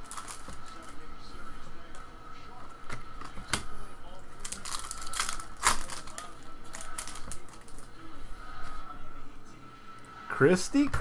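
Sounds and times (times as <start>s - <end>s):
foil wrapper crinkling: 0.0s - 1.0s, 4.4s - 7.9s.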